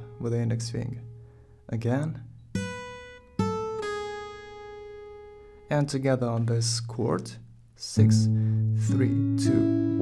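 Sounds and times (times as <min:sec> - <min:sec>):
acoustic guitar notes: 0:00.0 - 0:10.0.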